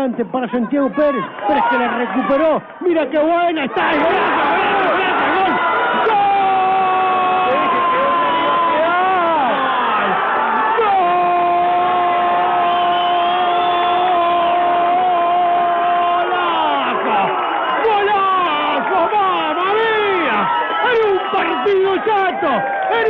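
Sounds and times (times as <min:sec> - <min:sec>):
commentator shouting goal cry: 0:00.0 - 0:23.0.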